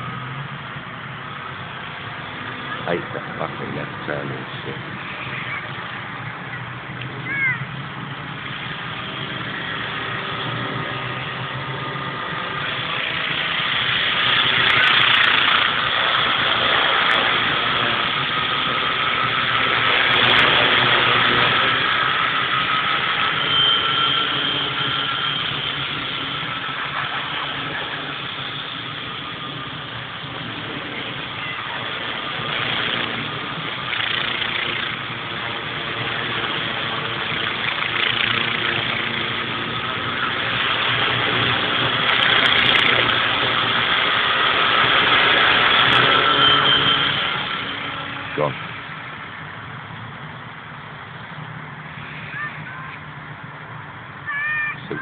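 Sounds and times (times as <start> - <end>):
rc helicopter motor whine: 0.0 - 49.6.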